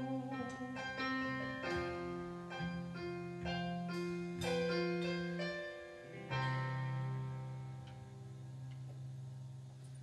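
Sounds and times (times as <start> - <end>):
keyboard piano chords: 0.0 - 10.0.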